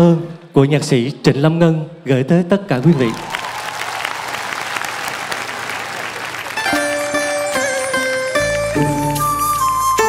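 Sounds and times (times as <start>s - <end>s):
audience applause: 2.8s - 8.2s
live band playing: 6.1s - 10.0s.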